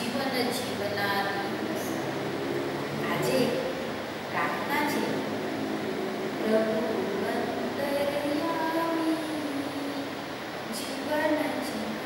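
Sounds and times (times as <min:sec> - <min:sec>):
woman singing a long note: 0:04.4 - 0:12.0.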